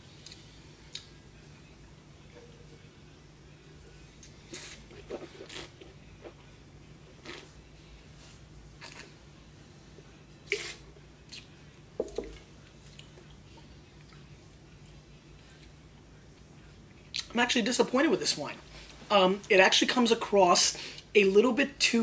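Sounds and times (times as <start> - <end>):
person slurping wine: 4.5 - 5.9.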